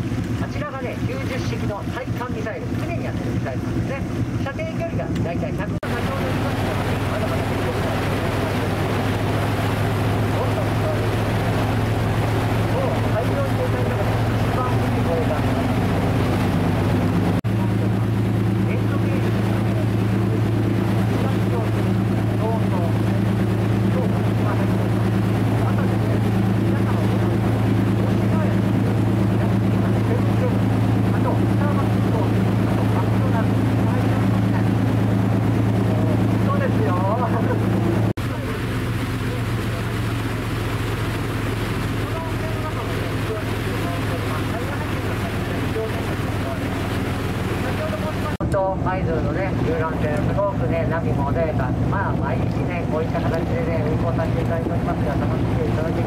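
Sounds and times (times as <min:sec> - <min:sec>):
boat engine droning: 0:00.0 - 0:56.0
water wash: 0:00.0 - 0:56.0.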